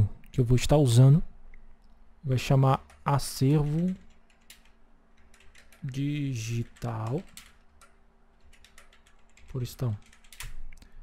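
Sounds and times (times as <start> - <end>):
typing on computer keyboard: 2.8 - 10.7.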